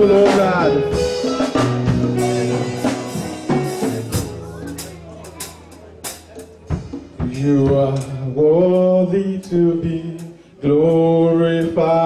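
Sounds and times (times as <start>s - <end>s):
man singing into a microphone: 0.0s - 1.0s, 7.2s - 12.0s.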